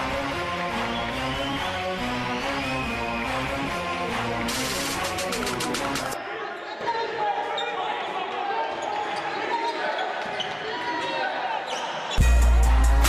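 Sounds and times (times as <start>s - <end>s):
loud music with heavy bass beat: 1.8s - 6.2s, 12.2s - 13.0s
voices echoing: 6.2s - 12.2s.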